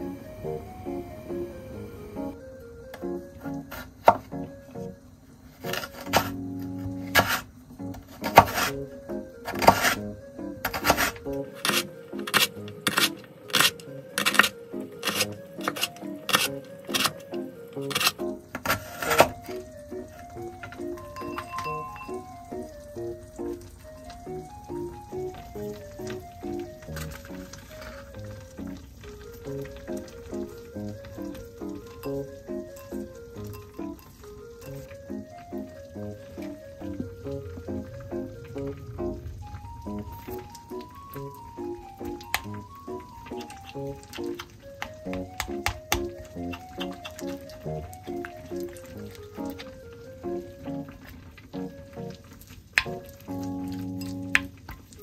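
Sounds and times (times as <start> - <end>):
light background music: 0.0 - 55.0
knife chopping on wooden board: 8.2 - 8.7.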